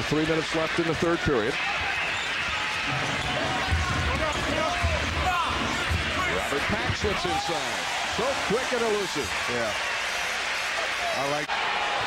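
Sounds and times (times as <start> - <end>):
arena crowd noise: 0.0 - 12.0
sneakers squeaking: 1.6 - 6.3.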